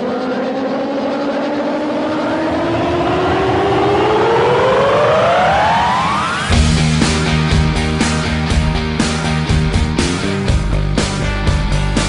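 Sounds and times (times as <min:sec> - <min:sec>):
rising pitched sweep: 0:00.0 - 0:12.0.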